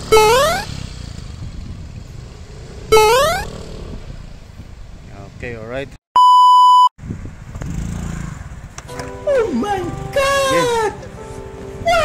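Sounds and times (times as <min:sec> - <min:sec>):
steady pure beep: 0:06.2 - 0:06.9
man exclaiming: 0:09.4 - 0:11.1.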